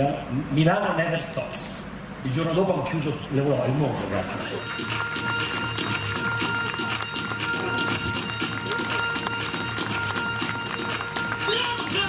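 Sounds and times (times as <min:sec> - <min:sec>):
audience applauding: 0:04.5 - 0:12.0.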